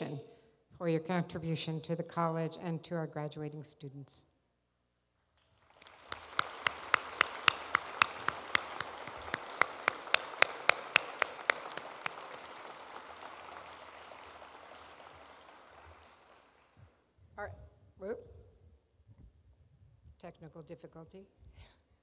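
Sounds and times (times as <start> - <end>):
close loud hand claps: 5.4 - 16.9
audience applauding: 5.5 - 16.8.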